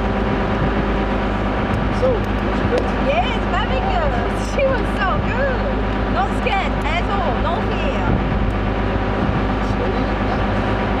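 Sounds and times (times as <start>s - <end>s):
motorboat engine humming: 0.0s - 11.0s
wind and water rushing: 0.0s - 11.0s.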